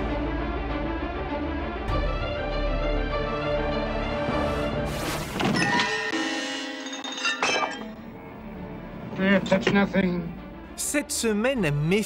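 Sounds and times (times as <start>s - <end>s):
soft background music: 0.0s - 6.8s, 7.8s - 12.0s
glassy clink: 5.6s - 8.0s.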